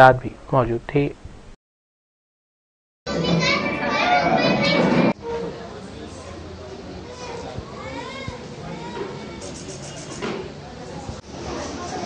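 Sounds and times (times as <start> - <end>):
young children's voices: 3.1 - 5.2, 7.1 - 9.7.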